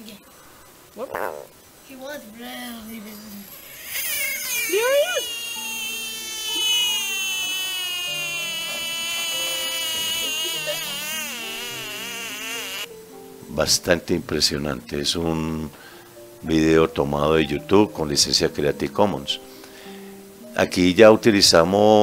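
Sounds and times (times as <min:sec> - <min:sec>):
bullfrog screaming: 0:01.0 - 0:01.6, 0:03.5 - 0:12.9.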